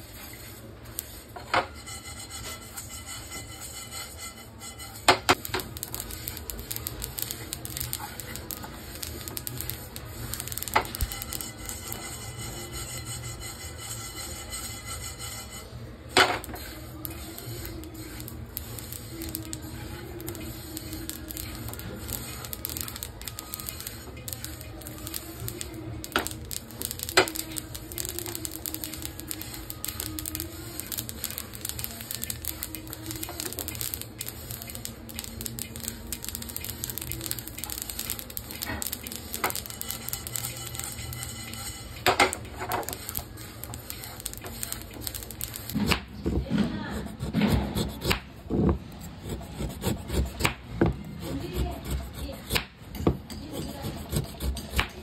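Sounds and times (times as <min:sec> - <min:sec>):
seeds crackling in a pan: 0:00.0 - 0:46.2.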